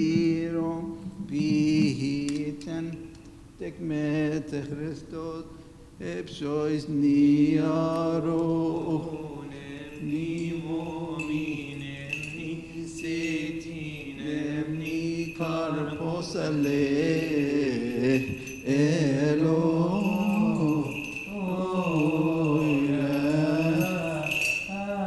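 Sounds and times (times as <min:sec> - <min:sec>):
man chanting slow melody: 0:00.0 - 0:24.8.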